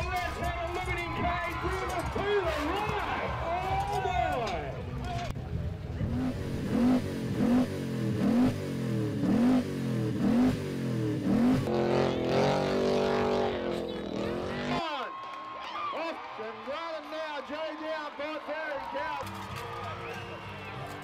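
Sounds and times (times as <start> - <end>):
engine revving hard: 6.0 - 14.8.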